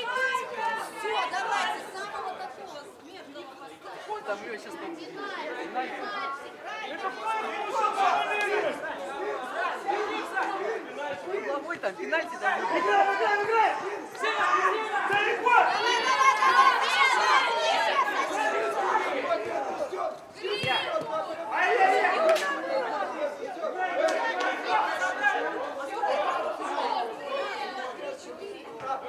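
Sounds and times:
crowd shouting and chattering: 0.0 - 29.0.

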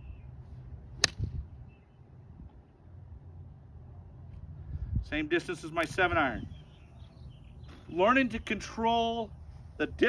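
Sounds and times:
golf club striking ball: 1.0 - 1.4.

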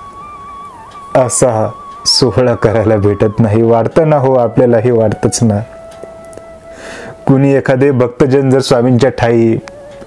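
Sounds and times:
soft background music: 0.0 - 10.0
man speaking: 1.1 - 5.7, 7.2 - 9.6
sharp intake of breath: 6.7 - 7.2.

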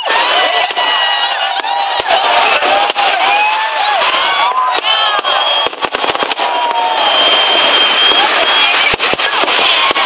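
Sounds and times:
crowd shouting and cheering: 0.0 - 10.0
fireworks bangs and crackles: 0.0 - 10.0
high steady whistle: 4.5 - 9.1.

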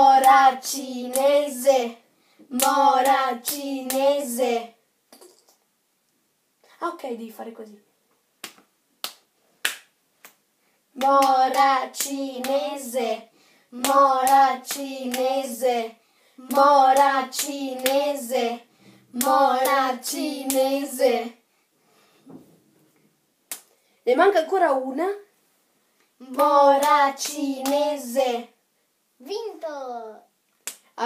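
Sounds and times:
sharp hand claps: 8.4 - 10.4, 23.5 - 23.7, 30.6 - 30.9.

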